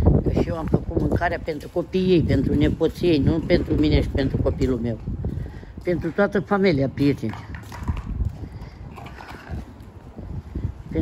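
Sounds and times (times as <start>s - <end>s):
footsteps on concrete: 0.1s - 11.0s.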